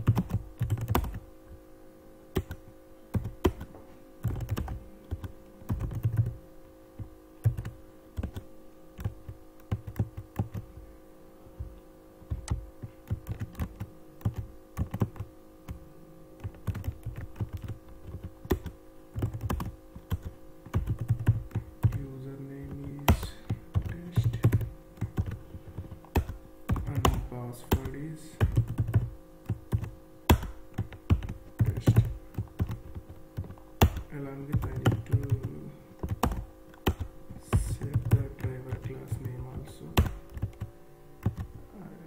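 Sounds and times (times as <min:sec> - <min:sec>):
typing on computer keyboard: 0:00.0 - 0:01.2, 0:02.4 - 0:06.4, 0:07.4 - 0:08.4, 0:09.0 - 0:10.8, 0:12.3 - 0:15.3, 0:16.4 - 0:22.0, 0:22.6 - 0:39.4, 0:40.0 - 0:41.5
steady low hum: 0:00.0 - 0:42.0.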